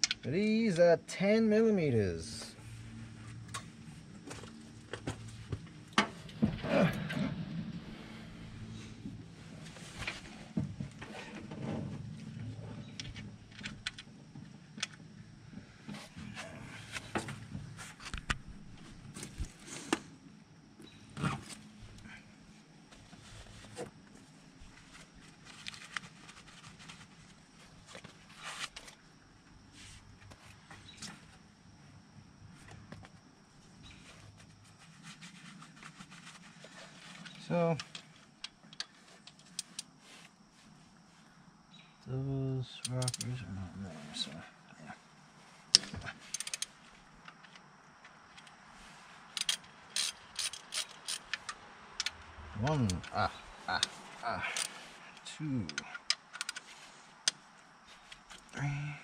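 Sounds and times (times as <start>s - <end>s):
metal tools clicking and clinking: 49.4s - 51.5s.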